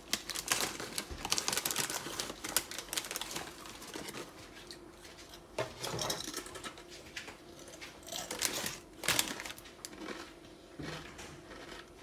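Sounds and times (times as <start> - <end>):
plastic chip packet crinkling: 0.0 - 4.8, 7.7 - 10.3.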